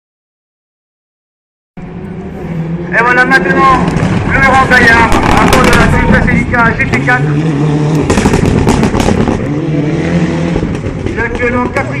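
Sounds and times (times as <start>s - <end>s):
rally car engine driving past: 1.8s - 12.0s
exhaust cracks and pops: 3.8s - 6.2s, 8.0s - 9.4s.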